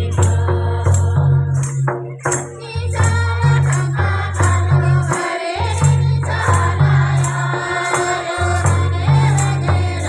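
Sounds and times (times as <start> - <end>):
percussion striking: 0.0 - 10.0
women singing in chorus: 0.0 - 10.0
clapping: 3.6 - 5.9.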